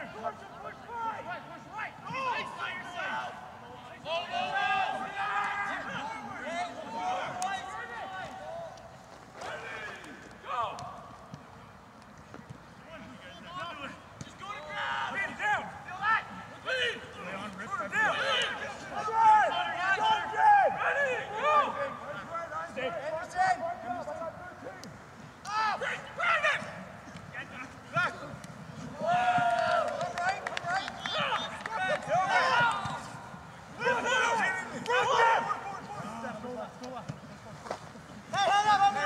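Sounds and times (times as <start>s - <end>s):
men shouting: 33.8s - 36.0s.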